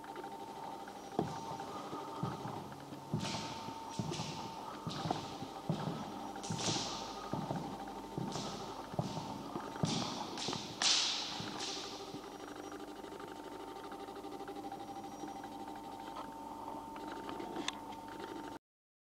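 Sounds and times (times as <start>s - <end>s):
faint steady hum: 0.0s - 18.6s
footsteps on wooden floor: 0.8s - 12.2s.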